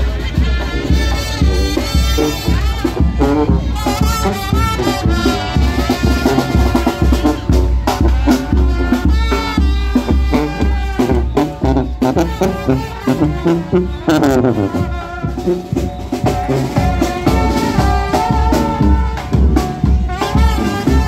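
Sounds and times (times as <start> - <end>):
bass drum beat: 0.0 - 21.0
marching brass band playing: 0.0 - 21.0.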